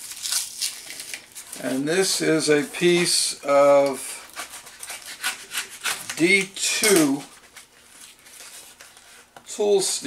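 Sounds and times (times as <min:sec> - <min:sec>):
knife cutting tape and cardboard: 0:03.7 - 0:07.2.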